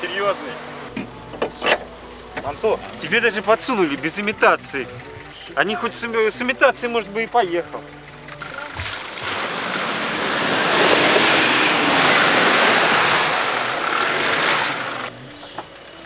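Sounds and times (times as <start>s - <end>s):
vehicle splashing through mud: 8.7s - 15.2s.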